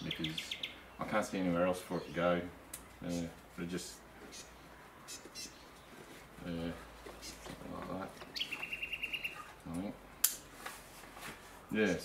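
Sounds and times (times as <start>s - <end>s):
birds chirping faintly: 0.0s - 10.0s.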